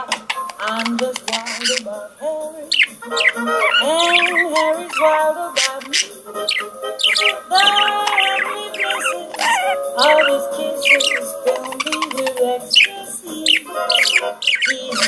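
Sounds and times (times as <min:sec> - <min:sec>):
budgerigar chirping and warbling: 0:00.0 - 0:02.0, 0:02.6 - 0:15.0
recorded music: 0:00.0 - 0:15.0.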